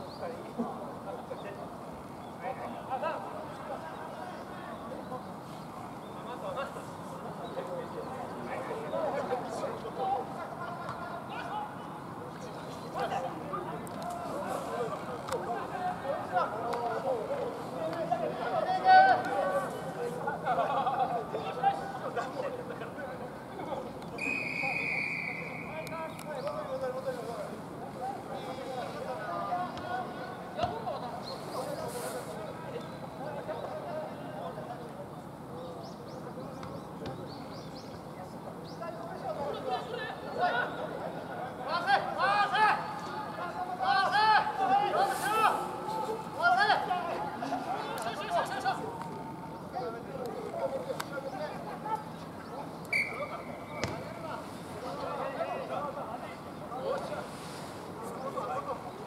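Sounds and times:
referee's whistle blast: 24.2s - 25.8s, 52.9s - 53.4s.

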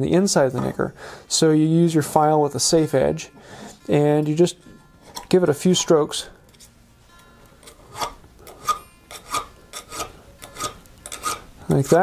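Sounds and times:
file rasping on steel: 7.6s - 12.0s.

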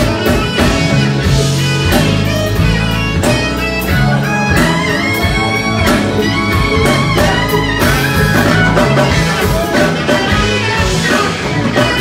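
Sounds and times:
bass guitar: 0.0s - 12.0s
drum kit: 0.0s - 12.0s
electric guitars: 0.0s - 12.0s.

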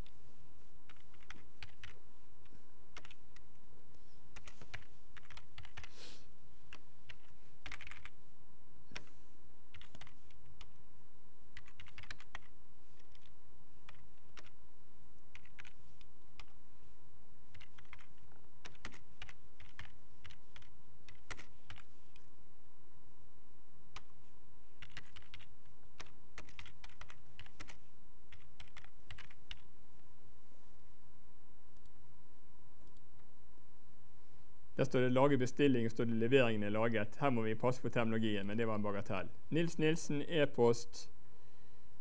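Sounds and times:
faint steady hum: 0.0s - 42.0s
typing on computer keyboard: 0.9s - 2.0s, 2.9s - 3.5s, 4.4s - 5.9s, 6.7s - 8.2s, 9.7s - 10.8s, 11.5s - 14.6s, 15.3s - 16.6s, 17.5s - 21.9s, 24.8s - 29.7s.

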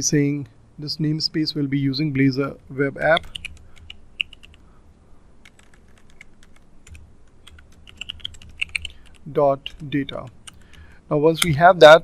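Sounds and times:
keyboard key clicks: 3.2s - 4.6s, 5.5s - 9.9s.

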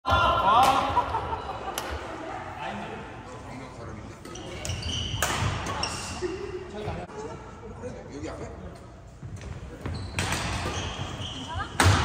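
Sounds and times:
racket hitting shuttlecock: 5.2s - 5.8s.

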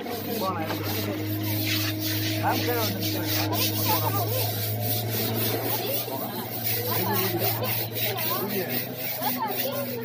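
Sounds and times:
hands scrubbing wet hide: 0.0s - 10.0s
steady low hum: 0.0s - 10.0s.

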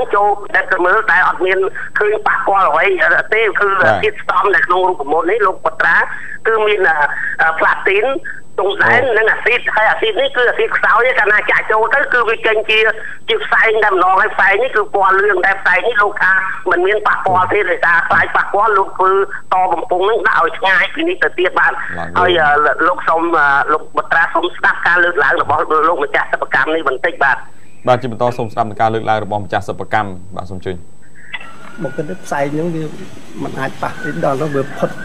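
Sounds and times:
person speaking over telephone: 0.0s - 27.4s.

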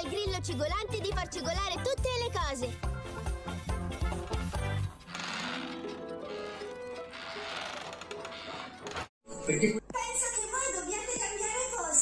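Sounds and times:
cartoon background music: 0.0s - 7.2s.

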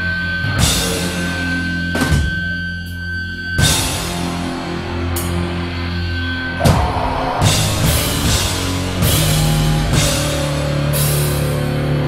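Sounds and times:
distorted low guitar chords: 3.4s - 12.0s
steady high tone: 4.5s - 11.2s
cymbal crash: 6.4s - 11.9s.

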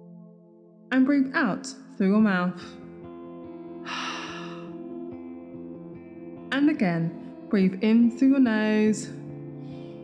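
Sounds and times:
ambient meditation music: 0.0s - 0.9s, 2.7s - 7.6s, 9.1s - 10.0s
woman breathing out: 3.8s - 4.9s.

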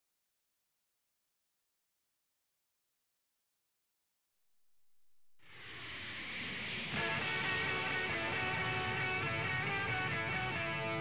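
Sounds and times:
background guitar music: 6.8s - 11.0s.

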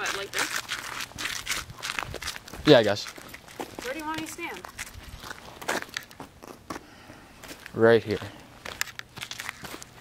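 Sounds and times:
footsteps crunching on snow: 0.0s - 10.0s.

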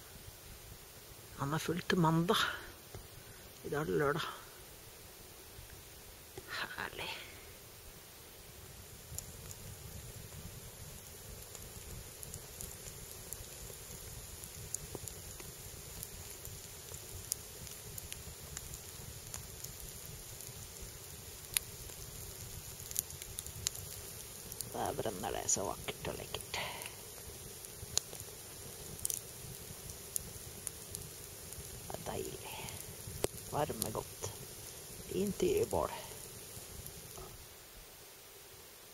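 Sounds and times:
campfire crackling: 0.0s - 38.9s
sharp fire pops: 5.6s - 37.5s.

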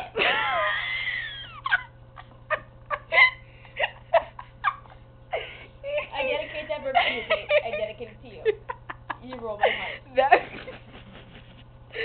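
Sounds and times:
girl laughing: 0.0s - 12.0s.

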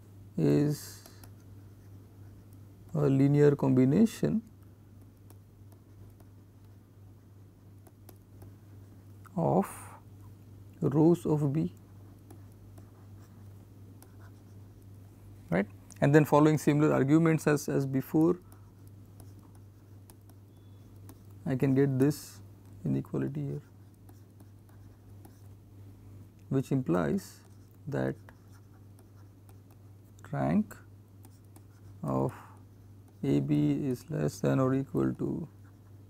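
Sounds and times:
steady low hum: 0.0s - 36.0s
stylus scratching on tablet: 0.7s - 2.6s, 5.0s - 9.0s, 11.0s - 14.9s, 16.3s - 25.6s, 26.7s - 30.0s, 30.7s - 36.0s
stylus tapping on pen tablet: 5.0s - 6.4s, 18.4s - 21.4s.

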